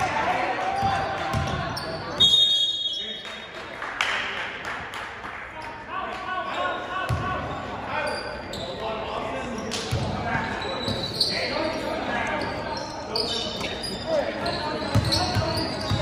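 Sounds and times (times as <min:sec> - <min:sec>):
sneaker squeaks: 0:00.8 - 0:03.2, 0:06.5 - 0:16.0
spectators chattering: 0:05.5 - 0:16.0.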